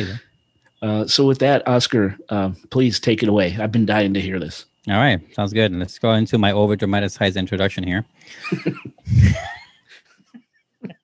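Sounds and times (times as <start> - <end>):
person laughing: 8.3 - 11.0.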